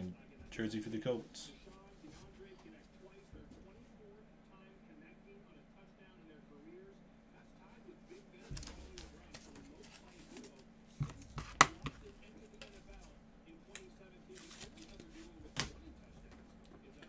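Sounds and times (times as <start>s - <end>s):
card stock rustling: 8.4s - 17.0s
cards clicking and tapping: 8.5s - 13.0s, 13.7s - 16.0s.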